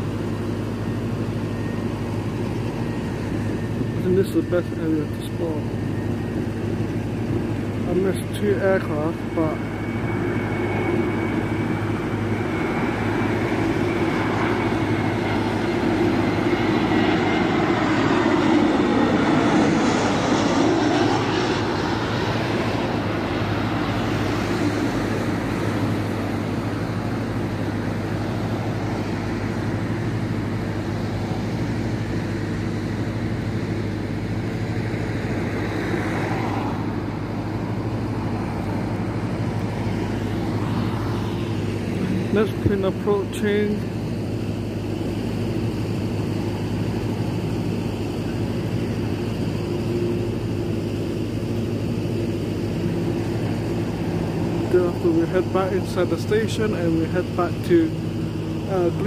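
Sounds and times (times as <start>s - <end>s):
jet airliner passing low: 0.0s - 59.0s
steady low hum: 0.0s - 59.0s.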